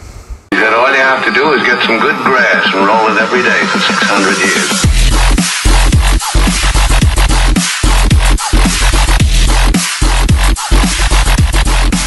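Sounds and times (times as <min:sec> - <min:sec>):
fast radio-like voice: 0:00.5 - 0:04.8.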